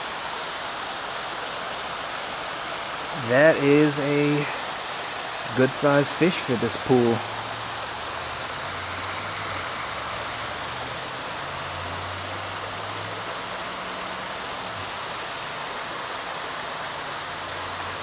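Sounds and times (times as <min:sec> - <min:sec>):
flowing water rushing: 0:00.0 - 0:18.0.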